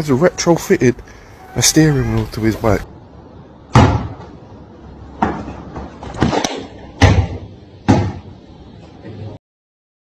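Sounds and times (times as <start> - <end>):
faint background noise: 0.0 - 9.4
loud sharp thumps: 3.7 - 4.4, 5.2 - 8.4.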